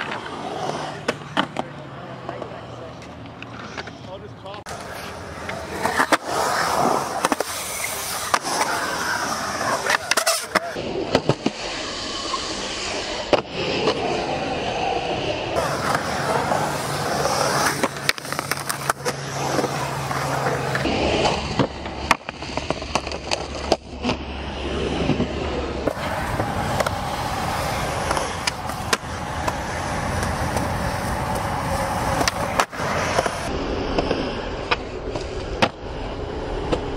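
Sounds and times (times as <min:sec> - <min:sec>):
skateboard wheels rolling on concrete: 0:00.0 - 0:36.9
skateboard clacks and knocks: 0:25.9 - 0:33.5.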